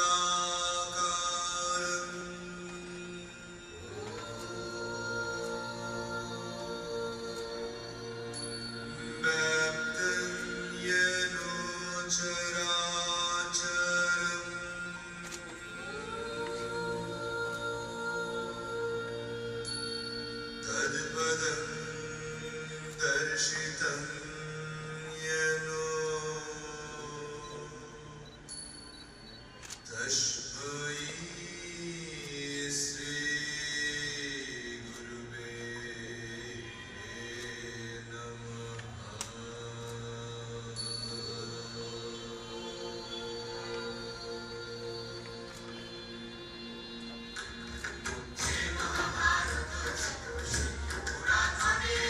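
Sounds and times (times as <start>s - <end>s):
chanted vocal line: 0.0s - 52.0s
sustained drone: 0.0s - 52.0s
high ringing tone: 27.3s - 30.1s.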